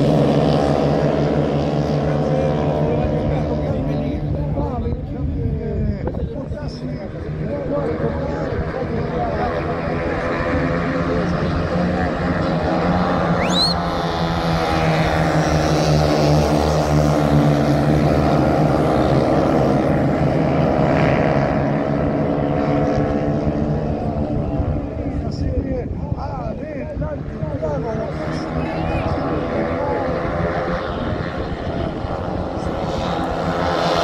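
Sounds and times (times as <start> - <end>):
race car engines: 0.0 - 34.0.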